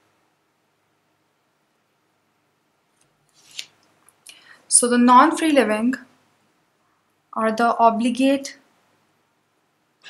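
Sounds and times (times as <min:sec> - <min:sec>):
paper and pen rustle: 0:03.0 - 0:03.9.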